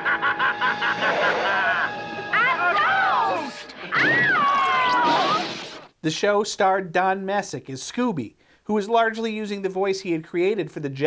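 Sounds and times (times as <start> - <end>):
noisy soundtrack: 0.0 - 4.2
high cartoon voice wailing: 2.4 - 5.6.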